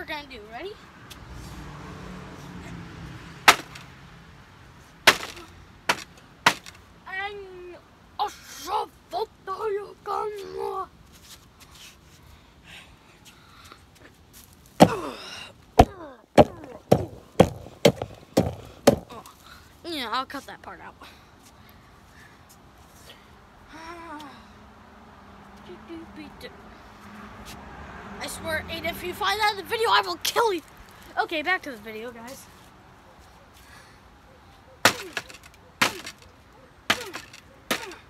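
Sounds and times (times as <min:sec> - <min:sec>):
tool striking wooden boards: 0:03.5 - 0:03.9, 0:05.1 - 0:06.8, 0:15.8 - 0:19.1, 0:34.8 - 0:36.3, 0:36.9 - 0:38.0.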